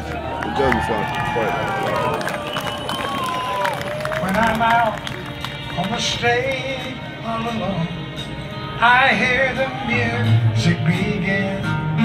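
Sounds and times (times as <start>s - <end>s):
crowd talking: 0.0s - 12.0s
live band playing quietly: 0.1s - 12.0s.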